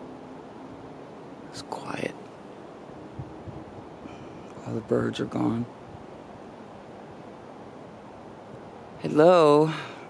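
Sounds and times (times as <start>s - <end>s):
faint rushing hiss: 0.0s - 10.0s.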